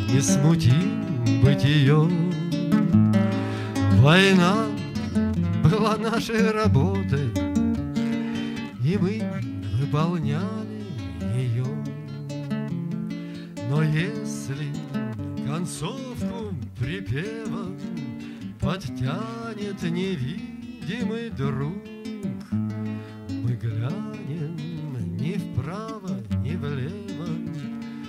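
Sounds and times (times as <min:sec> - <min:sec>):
man singing: 0:00.0 - 0:12.3, 0:13.5 - 0:28.0
nylon-string guitar: 0:00.0 - 0:28.0.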